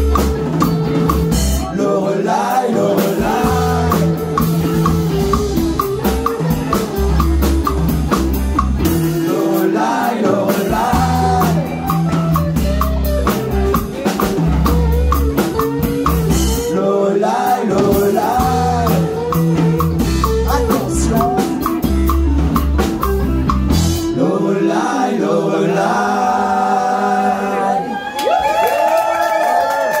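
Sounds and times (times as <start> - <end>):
drum kit: 0.0 - 24.2
electric guitars: 0.0 - 24.3
bass guitar: 0.0 - 24.9
person singing: 1.3 - 5.3, 8.8 - 14.1, 16.2 - 22.0, 23.9 - 28.0.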